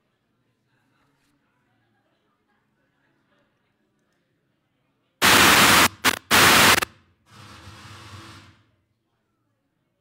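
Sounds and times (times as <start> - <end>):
wireless microphone static bursts: 5.2 - 6.9.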